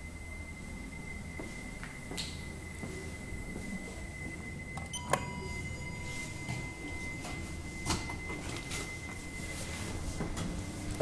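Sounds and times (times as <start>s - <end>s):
elevator chime ding: 0.0s - 11.0s
high-pitched whine: 0.0s - 11.0s.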